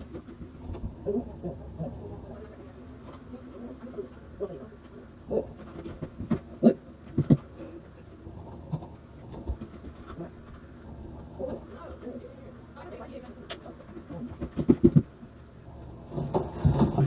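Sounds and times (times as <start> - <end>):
faint muffled voices: 0.8 - 5.9, 11.3 - 14.6.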